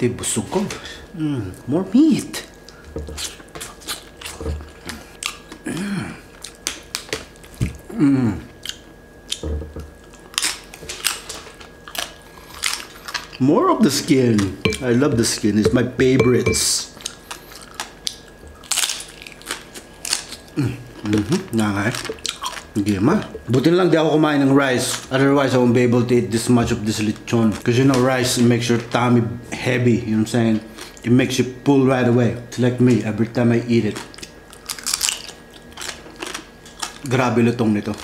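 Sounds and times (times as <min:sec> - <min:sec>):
chewing: 0:02.5 - 0:05.6, 0:08.5 - 0:13.4, 0:17.0 - 0:23.5, 0:33.9 - 0:37.1
crispy pork skin crunching: 0:06.3 - 0:07.9, 0:08.5 - 0:14.6, 0:17.0 - 0:23.2, 0:27.0 - 0:28.9, 0:33.1 - 0:38.0.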